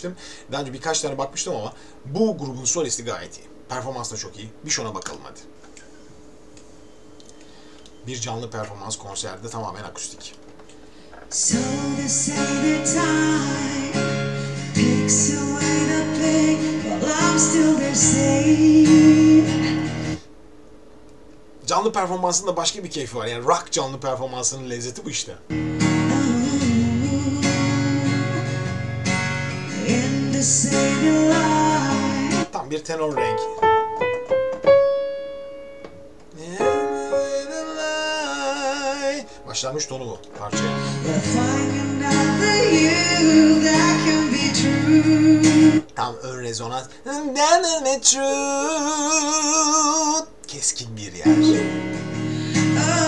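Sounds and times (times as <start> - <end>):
man singing: 11.3 - 19.8, 26.1 - 28.7, 29.7 - 32.5, 36.4 - 39.6, 40.4 - 45.8, 47.1 - 50.4, 52.5 - 53.0
strummed acoustic guitar: 11.3 - 20.2, 25.5 - 32.5, 40.4 - 45.8, 51.3 - 53.0
piano notes ringing out: 33.1 - 43.6, 51.3 - 53.0
man singing held note: 36.4 - 44.4, 51.3 - 51.8.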